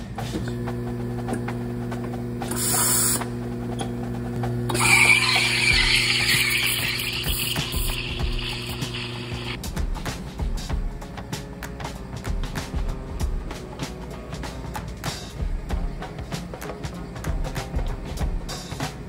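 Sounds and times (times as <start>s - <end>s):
espresso machine hum: 0.4s - 9.6s
steam wand hissing: 2.4s - 3.3s, 4.7s - 9.6s.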